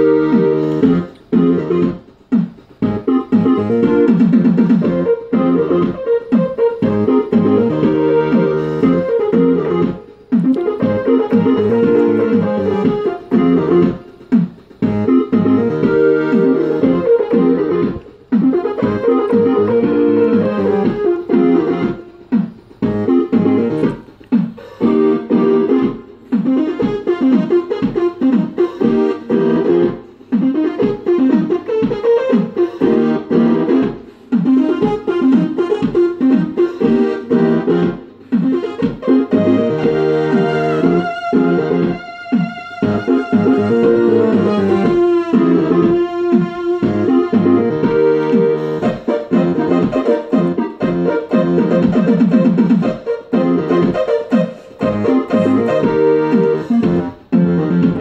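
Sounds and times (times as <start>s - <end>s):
drum machine beat: 0.0s - 58.0s
keytar synthesizer playing chords: 0.0s - 58.0s.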